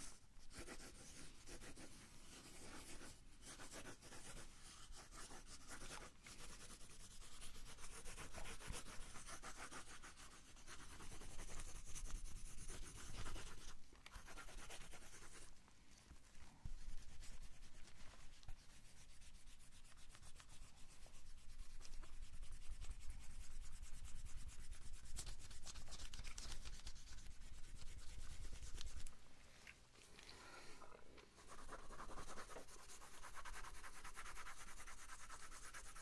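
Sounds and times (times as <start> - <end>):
pencil scratching on paper: 0.0 - 15.5, 31.4 - 36.0.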